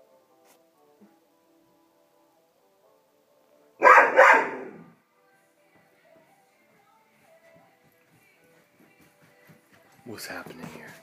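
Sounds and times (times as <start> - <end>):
young dog barking: 3.8 - 4.9.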